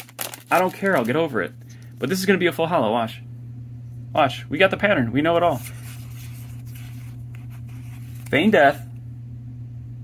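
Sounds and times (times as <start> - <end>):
steady low hum: 0.0 - 10.0
cards scraping on cards: 5.5 - 8.5.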